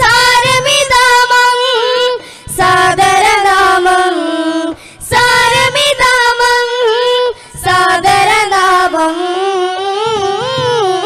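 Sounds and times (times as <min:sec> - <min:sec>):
group singing devotional song: 0:00.0 - 0:11.0.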